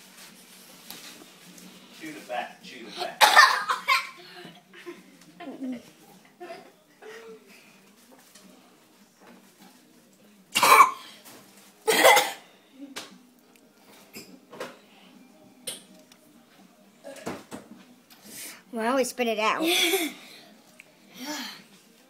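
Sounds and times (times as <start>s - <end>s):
boy coughing harshly: 3.0s - 4.2s, 10.6s - 11.0s, 11.9s - 12.4s.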